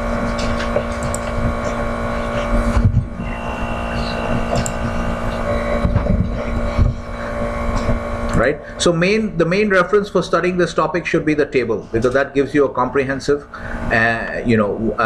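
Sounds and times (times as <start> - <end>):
low rumble: 0.0 - 9.4
electrical hum: 0.0 - 15.0.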